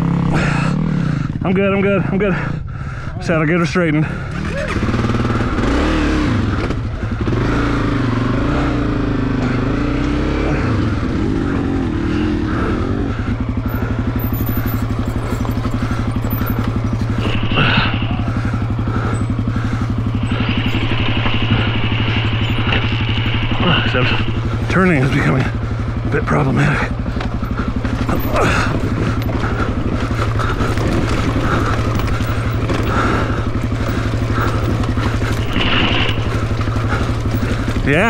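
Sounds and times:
motorcycle engine running: 0:00.0 - 0:38.0.

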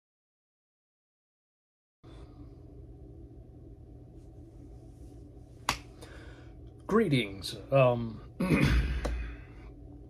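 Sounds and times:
low room hum: 0:02.0 - 0:10.0.

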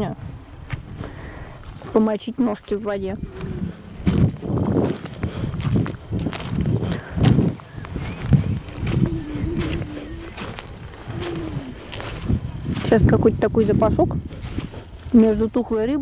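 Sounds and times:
footsteps crunching on pebbles: 0:00.0 - 0:16.0
songbird chirping: 0:01.8 - 0:16.0.

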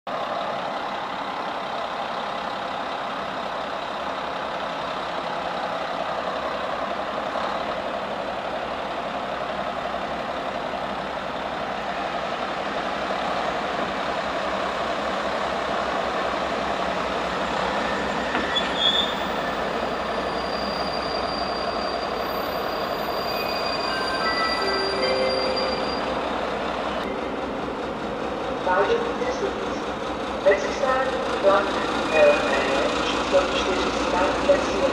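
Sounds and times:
train running noise: 0:00.1 - 0:34.9
high squealing tones: 0:17.9 - 0:19.5, 0:20.1 - 0:26.3.

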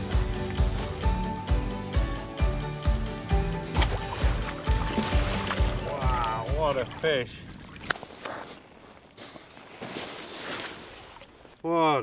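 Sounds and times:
fish flapping on seaweed: 0:07.8 - 0:11.6.

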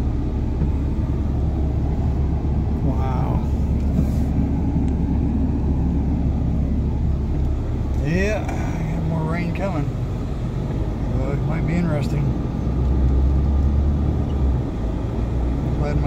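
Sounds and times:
truck cabin rumble on wet road: 0:00.0 - 0:16.0.

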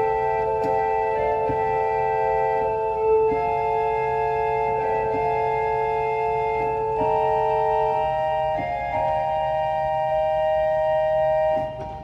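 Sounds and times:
pipe organ sustained chord: 0:00.0 - 0:12.0.

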